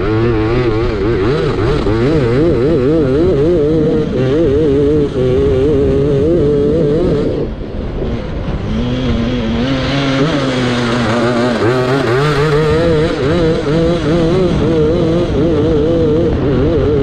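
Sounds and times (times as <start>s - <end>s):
kart engine revving: 0.0s - 17.0s
steady rushing noise: 0.0s - 17.0s.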